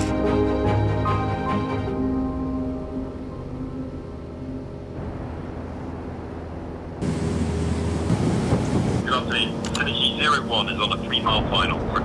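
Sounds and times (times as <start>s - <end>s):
soft music: 0.0s - 7.0s
light aircraft cockpit rushing: 5.6s - 12.0s.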